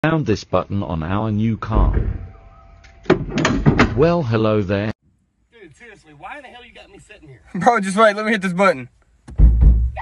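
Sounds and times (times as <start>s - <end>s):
thump: 1.7s - 4.0s, 9.2s - 10.0s.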